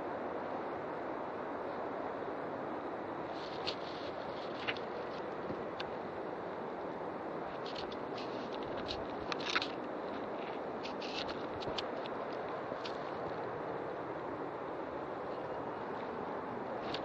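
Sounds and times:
background hiss: 0.0s - 17.0s
twigs crackling: 7.5s - 13.4s.

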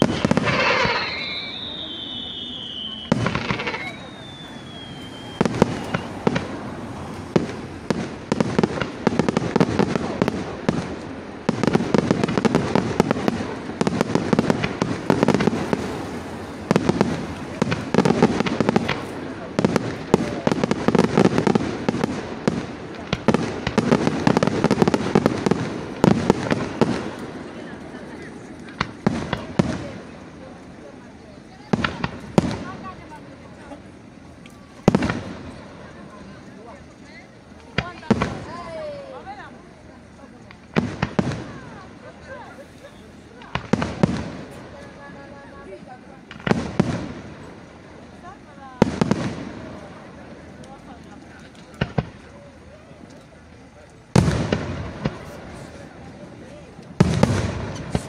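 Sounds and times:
whistling firework shells: 0.0s - 6.6s
fireworks crackling and banging: 0.0s - 58.0s.

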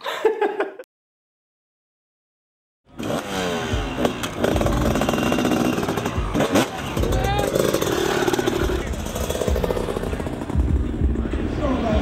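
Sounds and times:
motocross bike engine revving: 2.9s - 12.0s
heavy low thumps: 8.5s - 12.0s.

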